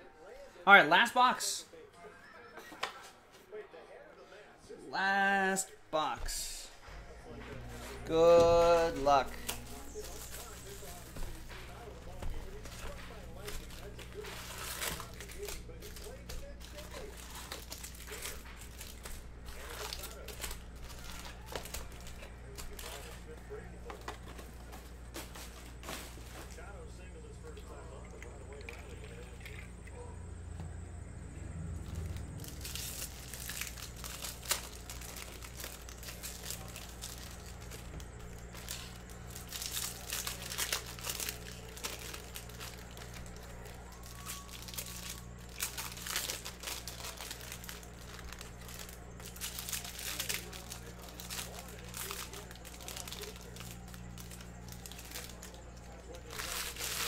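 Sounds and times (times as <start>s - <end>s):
low electrical hum: 0.0s - 57.0s
foil wrappers crinkling and tearing: 7.7s - 27.6s, 31.7s - 57.0s.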